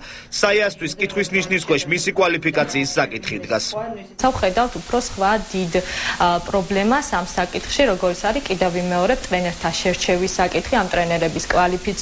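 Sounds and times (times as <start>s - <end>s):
steady background hiss: 4.2s - 12.0s.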